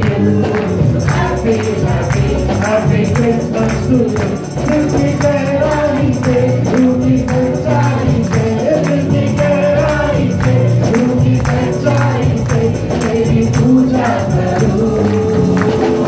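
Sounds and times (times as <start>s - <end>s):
backing singers: 0.0s - 16.0s
instruments playing: 0.0s - 16.0s
man singing into a microphone: 0.0s - 16.0s
tambourine beat: 0.0s - 16.0s.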